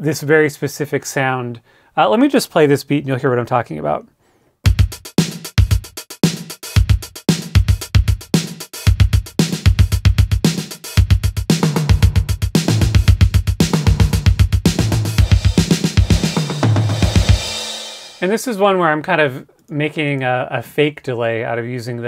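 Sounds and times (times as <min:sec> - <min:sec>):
drum machine beat: 0:04.6 - 0:18.2.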